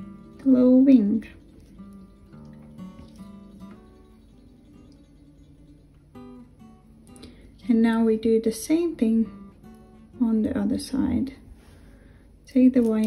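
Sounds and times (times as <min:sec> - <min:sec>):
plucked acoustic guitar music: 0:00.0 - 0:11.3.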